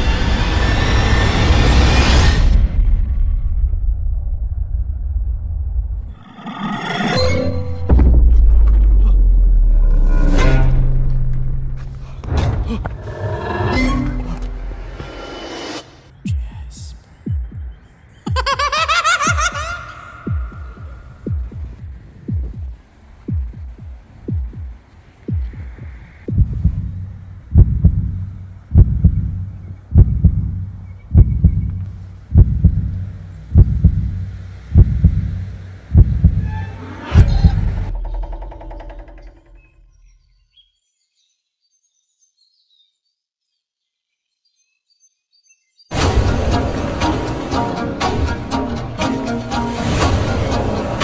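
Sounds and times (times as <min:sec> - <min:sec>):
low heartbeat-like thuds: 0:16.3 - 0:18.6, 0:19.3 - 0:36.5.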